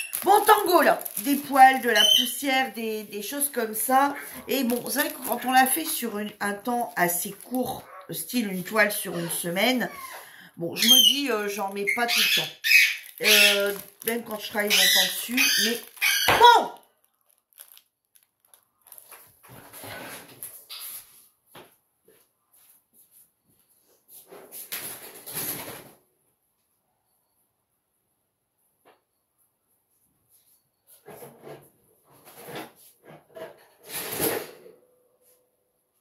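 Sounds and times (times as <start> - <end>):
rustling and handling noise: 0.0 - 9.9, 11.0 - 25.9.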